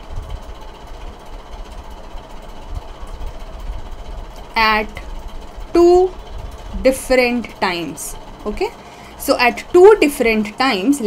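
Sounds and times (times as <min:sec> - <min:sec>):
faint steady hum: 0:00.0 - 0:11.0
low irregular rumble: 0:00.0 - 0:11.0.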